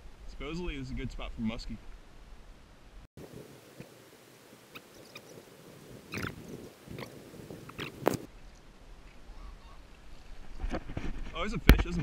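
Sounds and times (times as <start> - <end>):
short bird calls: 4.6 - 8.3, 9.2 - 9.9.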